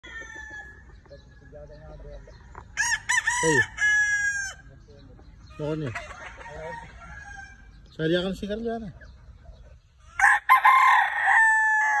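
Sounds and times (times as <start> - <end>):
rooster crowing: 0.0 - 0.8, 2.1 - 4.6, 10.1 - 12.0.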